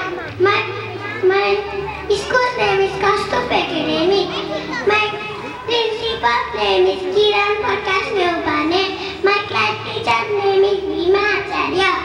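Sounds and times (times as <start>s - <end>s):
child speaking into a microphone: 0.0s - 12.0s.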